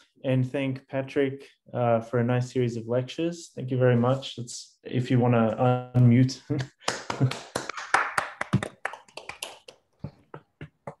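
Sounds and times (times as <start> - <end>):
people clapping: 6.5 - 11.0.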